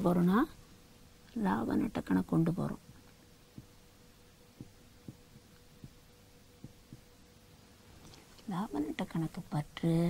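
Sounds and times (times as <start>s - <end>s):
faint steady hum: 0.0s - 10.0s
marker tapping on whiteboard: 4.6s - 6.0s, 6.6s - 7.1s.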